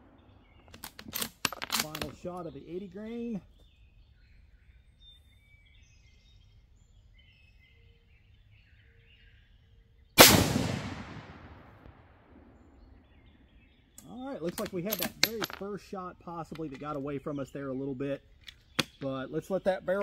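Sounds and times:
faint birdsong: 0:00.0 - 0:20.0
rifle shot echoing: 0:10.2 - 0:12.8.

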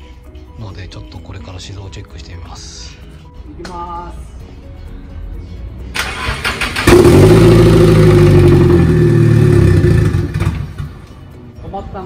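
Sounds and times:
engine cranking on starter: 0:05.9 - 0:10.9.

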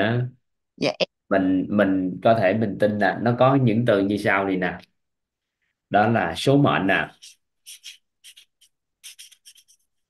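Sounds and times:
marker pen scratching on paper: 0:07.2 - 0:10.0.

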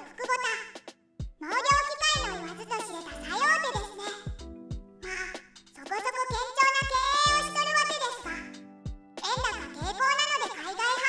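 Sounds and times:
high-pitched narrating voice: 0:00.0 - 0:00.8, 0:01.4 - 0:04.4, 0:05.0 - 0:08.6, 0:09.2 - 0:11.0
background music with bass: 0:01.2 - 0:05.8, 0:06.8 - 0:09.9.

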